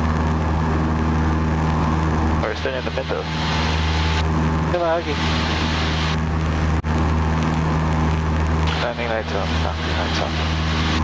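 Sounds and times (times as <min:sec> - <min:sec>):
airplane engine and propeller: 0:00.0 - 0:11.0.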